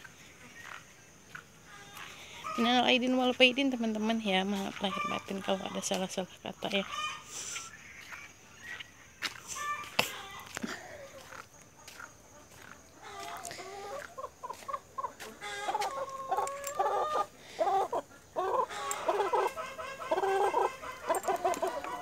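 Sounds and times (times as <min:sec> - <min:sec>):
chickens clucking: 0:00.0 - 0:22.0.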